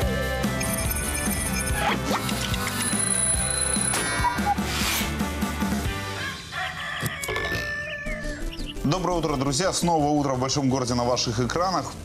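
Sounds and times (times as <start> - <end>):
tv jingle music: 0.0 - 6.1
swish effect: 4.6 - 5.3.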